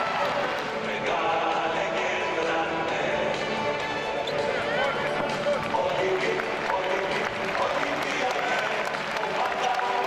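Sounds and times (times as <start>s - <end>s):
crowd chatter: 0.0s - 10.0s
sneakers squeaking on court: 4.1s - 4.8s.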